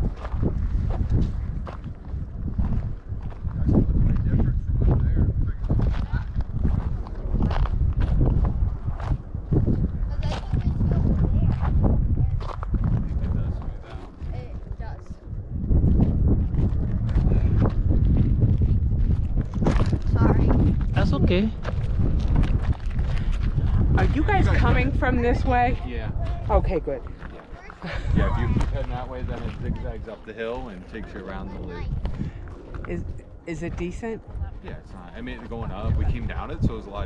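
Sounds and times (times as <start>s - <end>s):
wind rumble on microphone: 0.0s - 37.0s.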